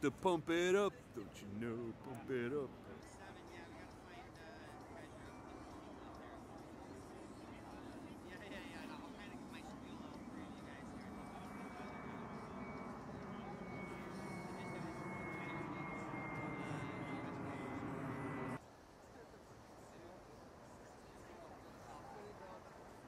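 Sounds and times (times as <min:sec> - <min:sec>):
jet aircraft passing overhead: 0:01.2 - 0:18.6.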